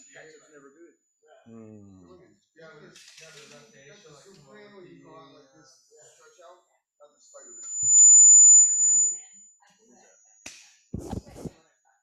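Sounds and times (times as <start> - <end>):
high-pitched feedback whistle: 7.4 - 9.4.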